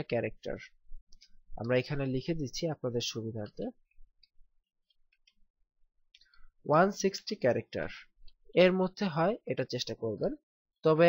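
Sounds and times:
person speaking: 0.0s - 0.8s, 1.5s - 3.9s, 6.6s - 11.0s.

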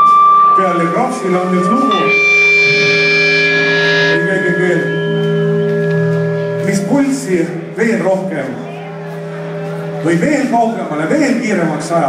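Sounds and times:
rock band sustained chord: 0.0s - 11.0s
bright high shimmer: 0.6s - 7.6s.

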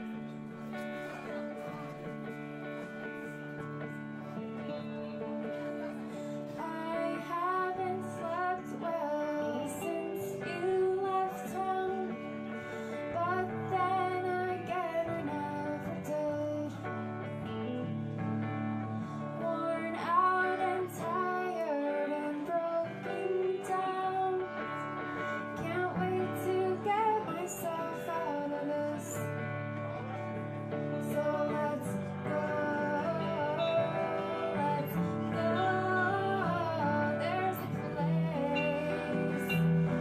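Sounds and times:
electric guitars: 0.0s - 40.0s
woman singing: 4.3s - 17.9s, 19.0s - 40.0s.

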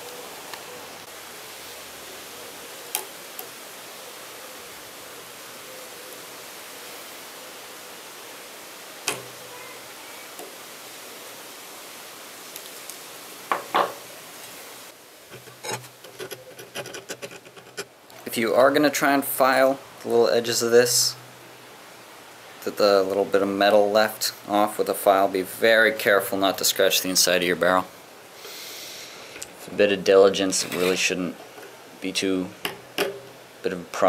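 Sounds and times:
steady hiss: 0.0s - 34.0s
file scratching metal: 15.3s - 17.9s, 30.6s - 31.1s.

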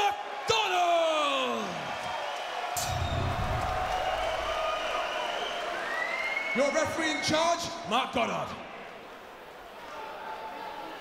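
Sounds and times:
crowd cheering and applauding: 0.0s - 7.5s
sharp bang: 2.8s - 5.8s
low rumble: 2.8s - 5.9s.

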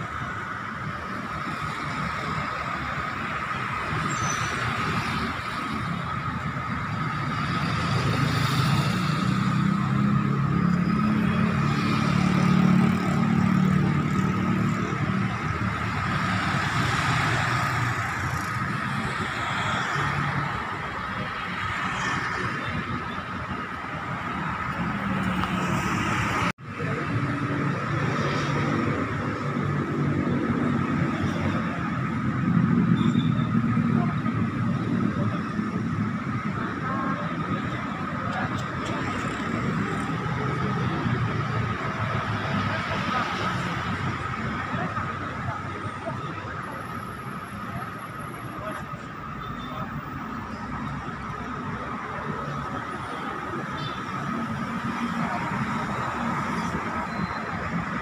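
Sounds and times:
city road traffic: 0.0s - 58.0s.

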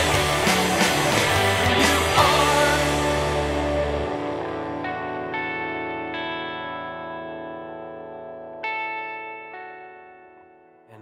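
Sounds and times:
full band playing: 0.0s - 3.8s
guitar notes ringing with effects: 0.0s - 11.0s.

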